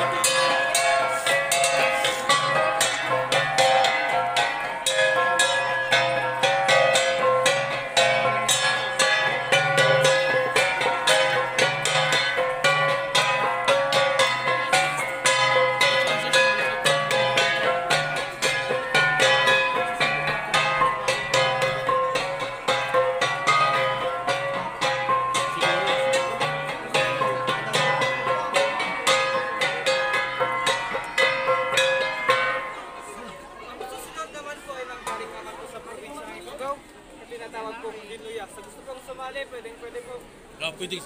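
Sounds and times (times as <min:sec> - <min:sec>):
flat gongs struck in interlocking beat: 0:00.0 - 0:36.6.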